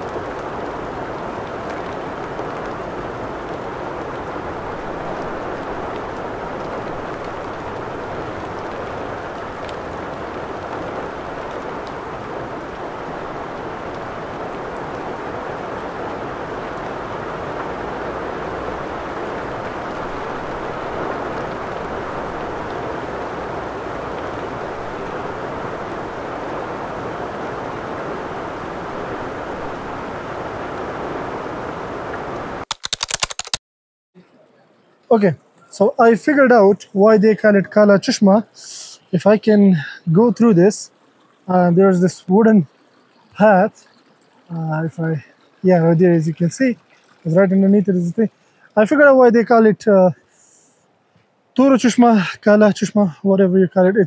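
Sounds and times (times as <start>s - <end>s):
steady rain falling: 0.0s - 33.4s, 34.2s - 54.0s.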